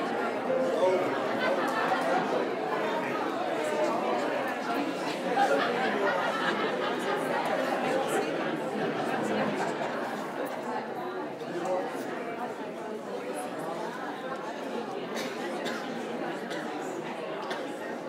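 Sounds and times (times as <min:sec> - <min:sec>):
crowd chatter: 0:00.0 - 0:18.0.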